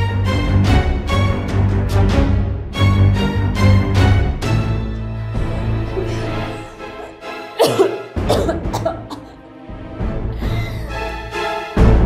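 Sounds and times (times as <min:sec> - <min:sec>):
dramatic background music: 0:00.0 - 0:12.0
woman coughing and gasping: 0:05.9 - 0:09.4.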